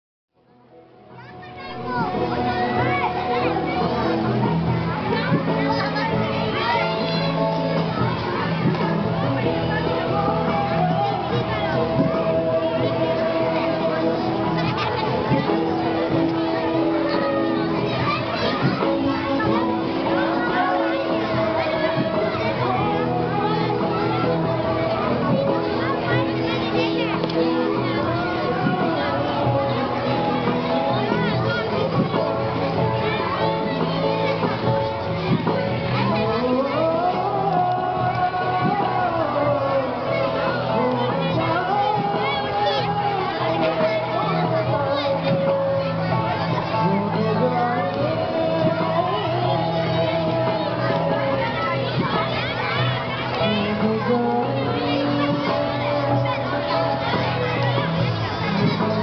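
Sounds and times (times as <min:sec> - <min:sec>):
background music with held notes: 0:00.4 - 0:59.0
children chattering and calling out: 0:00.5 - 0:59.0.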